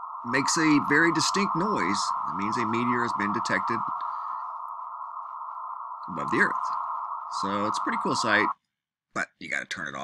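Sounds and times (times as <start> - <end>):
radio receiver hiss: 0.0 - 8.5.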